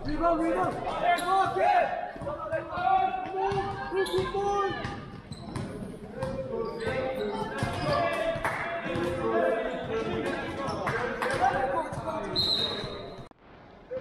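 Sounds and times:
echoing shouts: 0.0s - 5.1s.

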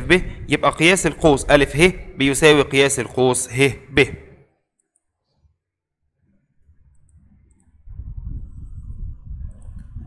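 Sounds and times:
faint low rumble: 6.3s - 10.0s.

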